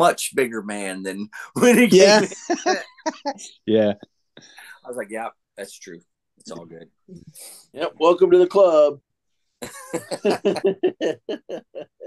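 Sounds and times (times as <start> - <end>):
man laughing heartily: 2.0 - 3.4, 9.6 - 12.0.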